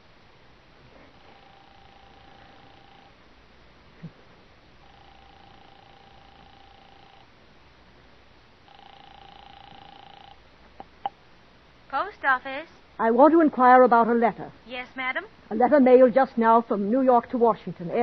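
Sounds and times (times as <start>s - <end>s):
telephone ringing tone: 1.1s - 3.2s, 4.8s - 7.3s, 8.6s - 10.4s.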